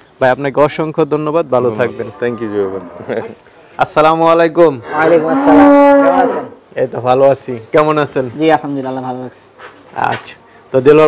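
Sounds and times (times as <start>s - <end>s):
cows mooing: 1.6s - 3.4s, 4.8s - 6.6s.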